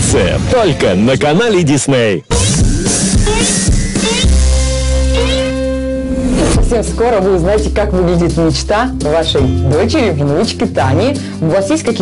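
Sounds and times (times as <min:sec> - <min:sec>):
tv jingle chord with rising glides: 0:00.1 - 0:10.3.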